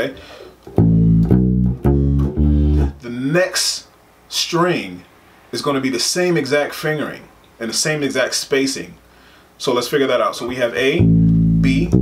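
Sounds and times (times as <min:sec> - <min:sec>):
electric bass low notes: 0:00.7 - 0:03.0, 0:10.8 - 0:12.0.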